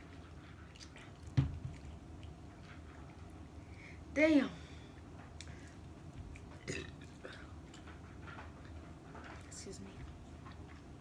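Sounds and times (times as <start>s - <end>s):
people chewing food: 0.0s - 3.8s, 5.0s - 9.4s.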